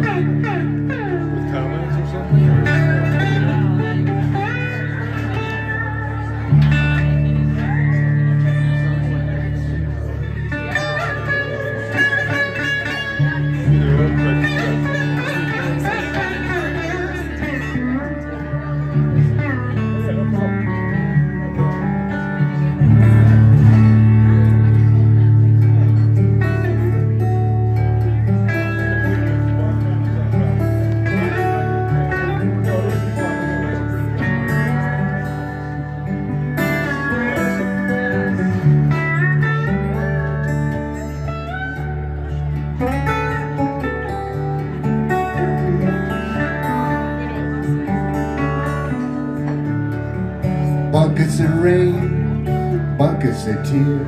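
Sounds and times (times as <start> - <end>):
fingerpicked acoustic guitar: 0.0 - 54.0
resonator guitar: 0.0 - 54.0.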